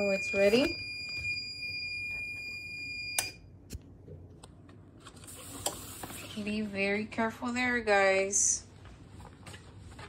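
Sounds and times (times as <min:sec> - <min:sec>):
timer alarm tone: 0:00.0 - 0:03.4
paper handling: 0:08.8 - 0:10.0.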